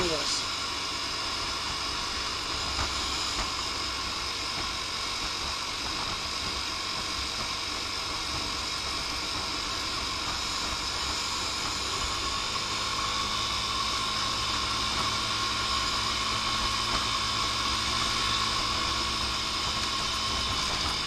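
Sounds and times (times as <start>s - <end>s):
small engine drone: 0.0s - 21.0s.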